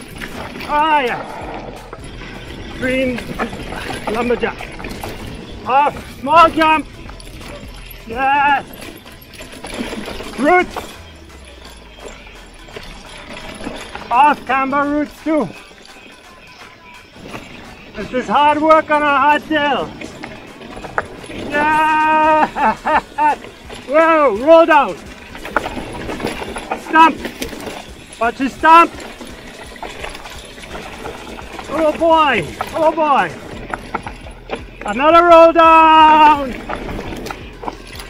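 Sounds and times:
bike knocks and rattles: 0.0 - 16.0, 17.1 - 38.0
bike tyres over dirt and roots: 0.0 - 38.0.

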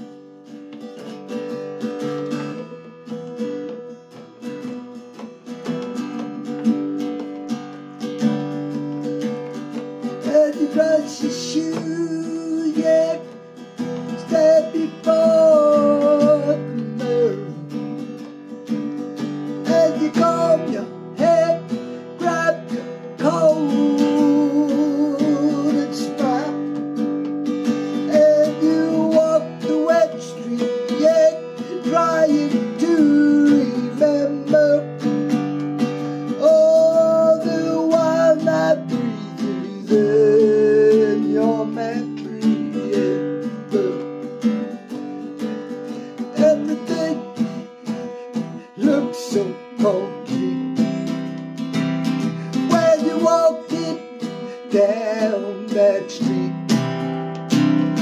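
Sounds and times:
acoustic guitar strumming: 0.0 - 58.0
man singing held notes: 10.2 - 13.4, 14.0 - 17.6, 19.6 - 26.8, 27.8 - 34.9, 36.3 - 44.1, 46.2 - 50.8, 52.5 - 56.6.

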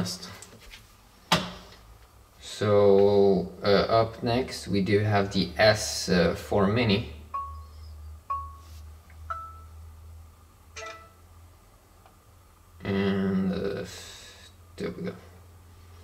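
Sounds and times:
short clear pings: 7.3 - 8.6, 9.3 - 9.8, 10.8 - 11.2.

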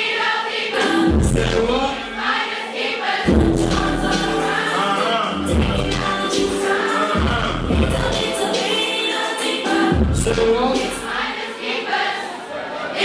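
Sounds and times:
sung vocals: 0.0 - 2.4, 3.2 - 11.4
crowd singing along: 0.0 - 13.0
bass-heavy beat: 1.1 - 1.8, 3.3 - 4.5, 5.2 - 6.6, 7.2 - 8.3, 9.9 - 10.9
live concert music: 3.2 - 11.2.

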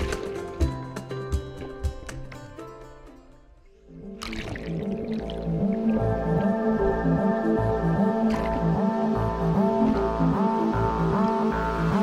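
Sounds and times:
background music with low beat: 0.0 - 3.0, 4.2 - 12.0.

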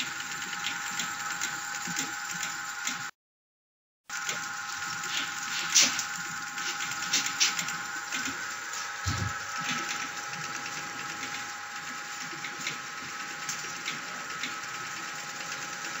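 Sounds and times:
machine whirring: 0.0 - 3.1, 4.1 - 16.0.

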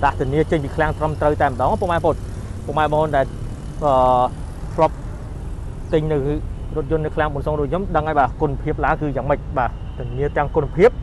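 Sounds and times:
man talking: 0.0 - 5.0, 5.9 - 11.0.

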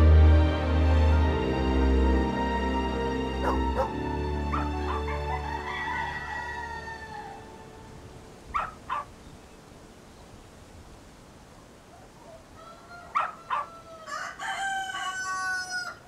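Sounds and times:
soundtrack music with low notes: 0.0 - 8.1
dog barking: 3.4 - 5.3, 8.5 - 9.1, 13.1 - 13.8.

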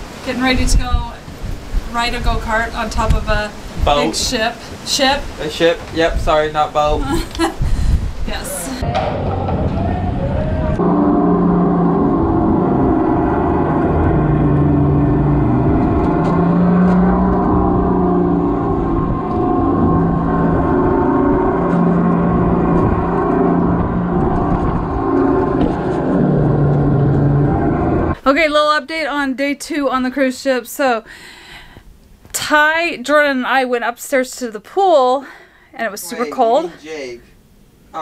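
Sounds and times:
wind buffeting microphone: 0.0 - 28.2
low hum shifting pitch: 8.3 - 28.2.

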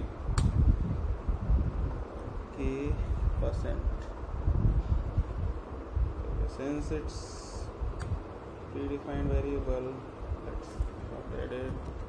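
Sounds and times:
low rumbling on microphone: 0.0 - 12.0.

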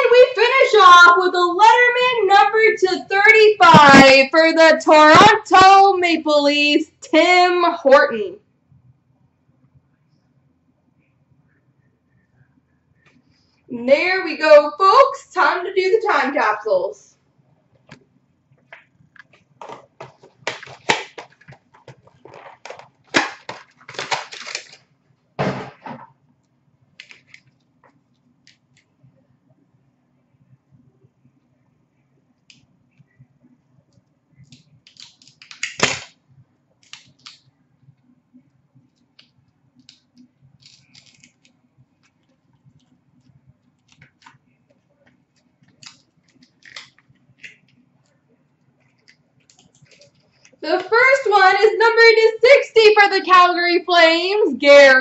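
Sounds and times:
card packs crinkling and opening: 19.2 - 24.9, 34.5 - 36.1, 36.8 - 37.4, 39.0 - 47.8, 48.8 - 50.9.

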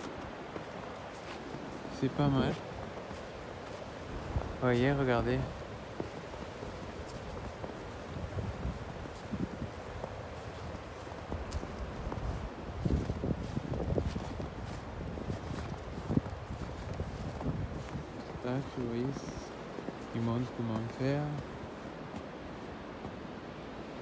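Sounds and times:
footsteps on snow: 0.0 - 23.7
wind rumble on microphone: 0.0 - 24.0.

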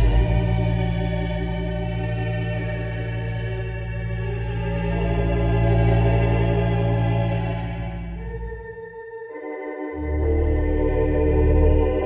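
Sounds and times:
theatre organ playing a melody: 0.0 - 12.0.

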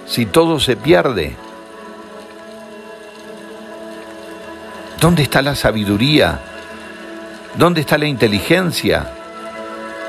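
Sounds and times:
sustained chord background music: 0.0 - 10.0.

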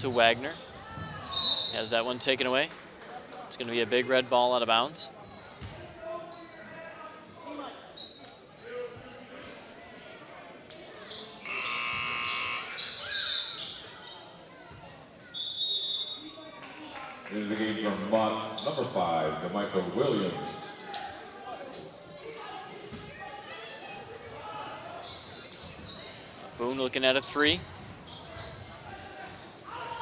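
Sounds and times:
voices in a gym: 0.0 - 30.0
scoreboard buzzer blare: 11.4 - 12.8.

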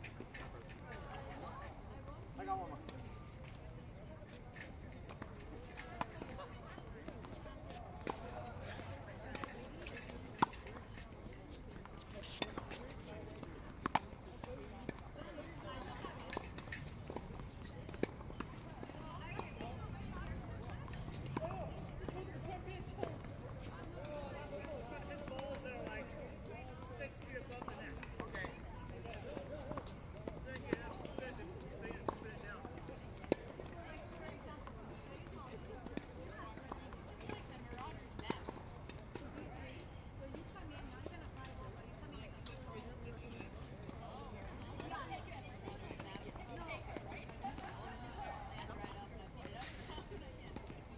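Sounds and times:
faint voices: 0.1 - 50.9
tennis balls struck and bouncing: 5.1 - 11.3, 12.0 - 26.1, 26.7 - 39.5.

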